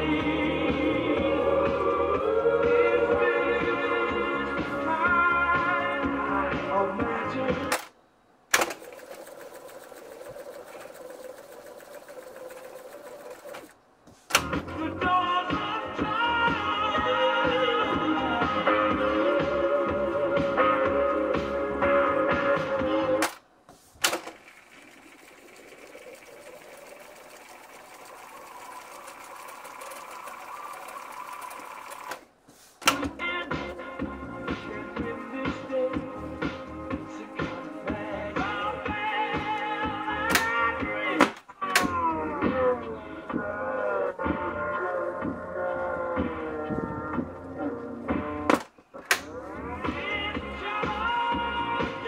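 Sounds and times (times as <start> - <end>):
music from tape: 0.0 - 7.9, 14.3 - 23.4, 32.8 - 52.0
tape recorder fast-winding whirr: 8.6 - 13.8, 24.0 - 32.3.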